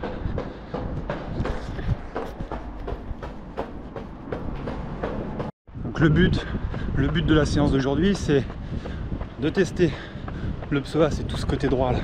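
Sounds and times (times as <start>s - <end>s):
running footsteps on pavement: 0.0s - 12.0s
wind rumble: 0.0s - 12.0s.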